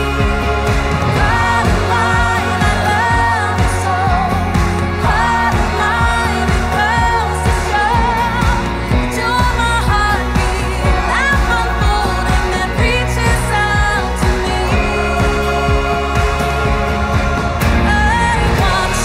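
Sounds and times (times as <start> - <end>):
pop song singing: 0.0 - 19.0
sustained bass: 0.0 - 19.0.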